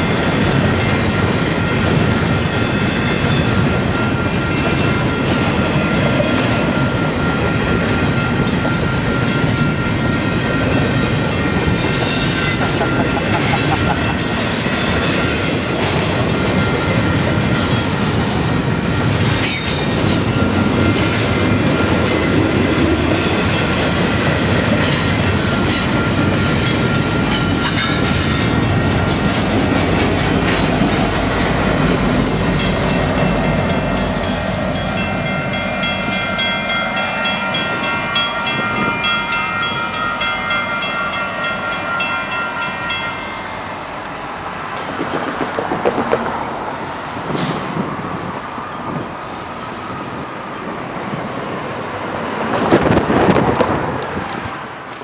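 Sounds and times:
train wheels rumbling on rail: 0.0 - 55.0
high wheel squeal: 8.8 - 22.4.

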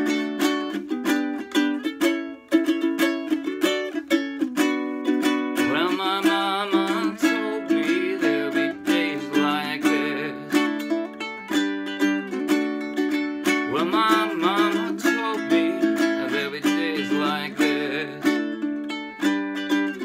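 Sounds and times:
ukulele strumming: 0.0 - 20.0
man singing: 5.5 - 11.0, 13.4 - 18.7.

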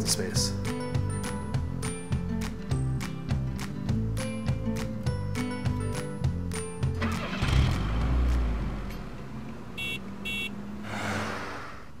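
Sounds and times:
brief whoosh: 10.8 - 12.0.

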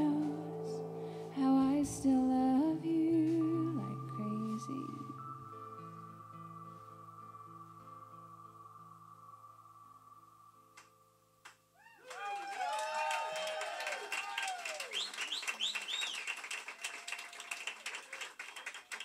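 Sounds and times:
live band sustained chord: 0.0 - 11.0
audience cheering and clapping: 11.8 - 19.0.

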